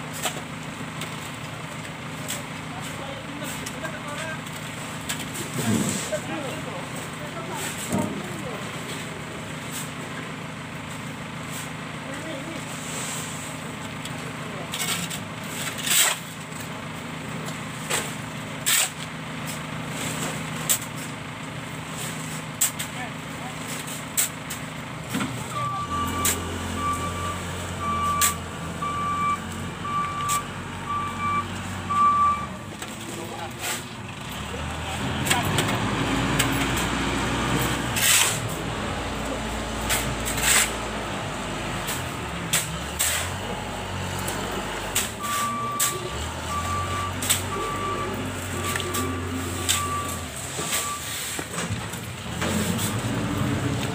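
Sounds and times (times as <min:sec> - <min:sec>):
vehicle engine rumbling: 0:00.0 - 0:53.9
shovels scraping sand and concrete: 0:05.1 - 0:06.4, 0:12.6 - 0:13.6, 0:14.7 - 0:16.4, 0:17.8 - 0:21.1, 0:22.0 - 0:24.6, 0:25.4 - 0:28.4, 0:32.9 - 0:53.9
reversing alarm beeping: 0:25.5 - 0:32.6, 0:45.2 - 0:51.3.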